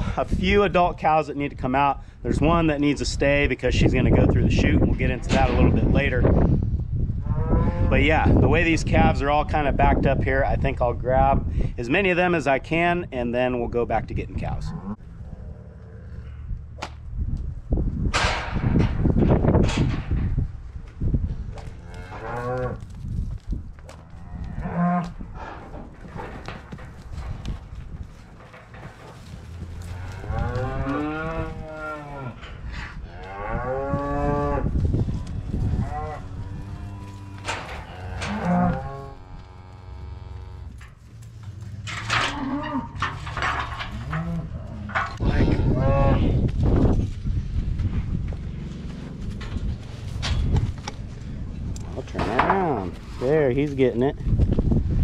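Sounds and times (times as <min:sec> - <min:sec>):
cattle mooing: 0:29.8 - 0:34.7, 0:35.5 - 0:40.7.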